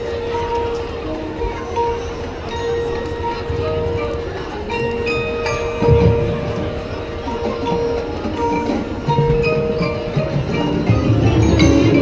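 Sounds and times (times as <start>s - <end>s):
mallet percussion tones: 0.0s - 12.0s
marching band held notes: 0.0s - 12.0s.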